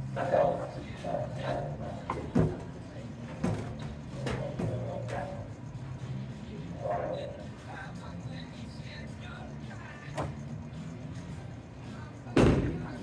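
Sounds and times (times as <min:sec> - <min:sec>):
background music: 0:00.0 - 0:13.0
voices: 0:00.0 - 0:13.0.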